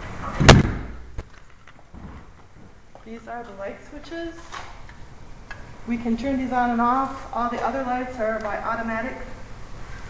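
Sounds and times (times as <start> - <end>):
door banging shut: 0.2 - 1.1.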